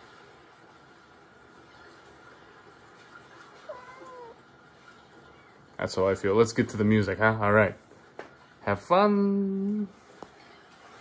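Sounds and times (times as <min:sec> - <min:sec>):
cat meowing: 0:03.6 - 0:04.4.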